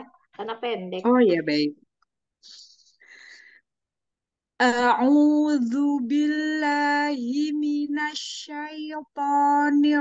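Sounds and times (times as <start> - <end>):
person breathing: 2.4 - 3.8.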